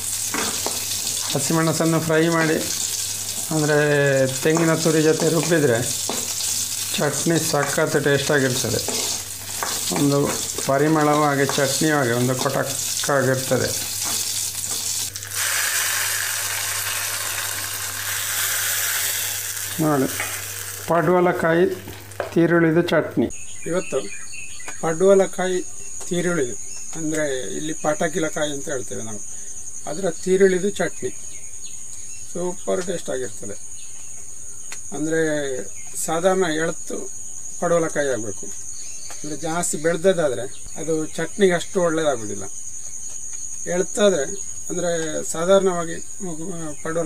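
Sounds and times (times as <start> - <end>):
chillies sizzling in oil: 0.0 - 22.3
high insect trill: 0.0 - 22.6, 23.2 - 47.0
person talking: 3.5 - 6.0, 6.9 - 9.0, 9.9 - 13.8, 19.8 - 20.2.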